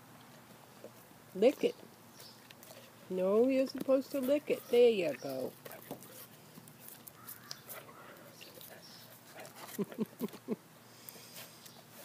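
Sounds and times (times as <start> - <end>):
dog crunching ice pop: 2.2 - 10.0
person speaking: 3.1 - 5.6
person laughing: 9.6 - 10.6.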